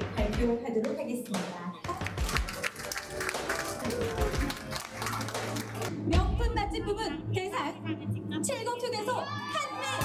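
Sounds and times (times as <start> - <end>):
background music: 0.0 - 10.0
audience clapping: 1.8 - 6.0.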